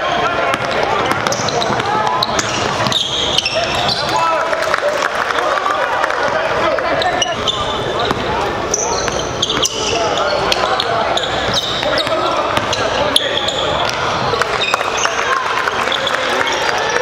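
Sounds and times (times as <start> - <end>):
sneaker squeaks: 0.0 - 4.2, 6.9 - 17.0
indistinct echoing voices: 0.0 - 17.0.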